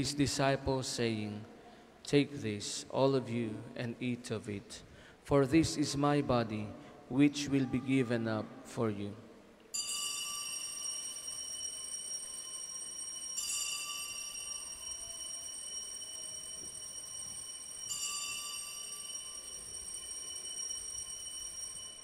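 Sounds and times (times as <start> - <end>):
altar bells ringing: 9.7 - 22.0.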